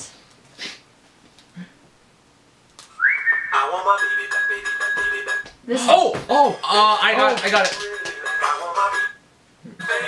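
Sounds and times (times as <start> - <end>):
whistle-like note sliding up: 2.9 - 3.7.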